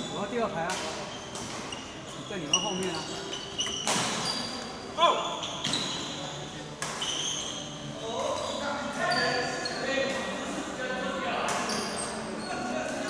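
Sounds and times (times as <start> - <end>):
shoes squeaking on court: 0.0 - 10.4, 11.4 - 13.0
rackets striking shuttlecock: 0.6 - 1.9, 3.6 - 4.3, 6.8 - 7.2.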